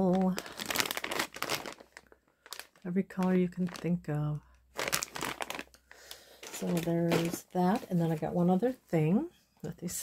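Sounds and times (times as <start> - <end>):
plastic bag crinkling: 0.0 - 8.3.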